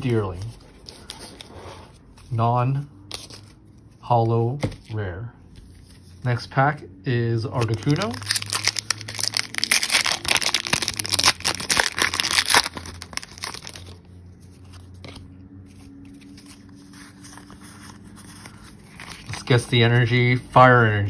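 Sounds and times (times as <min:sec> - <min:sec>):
foil wrapper tearing and crinkling: 0:07.6 - 0:14.0, 0:17.0 - 0:19.6.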